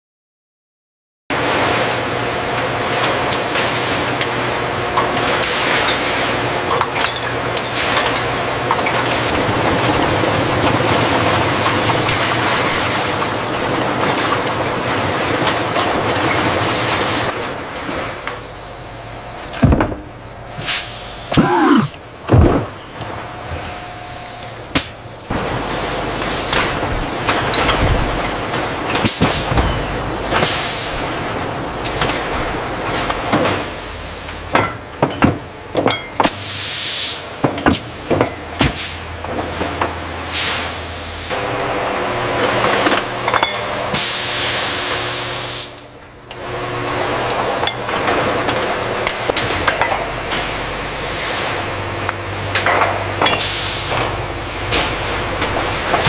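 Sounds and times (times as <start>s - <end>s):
bottling machinery din: 21.3s - 22.9s.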